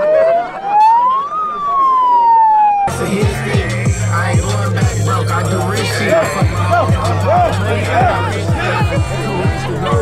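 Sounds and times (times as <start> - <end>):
megaphone siren wail: 0.0 - 3.0
hip hop beat with deep bass: 2.9 - 10.0.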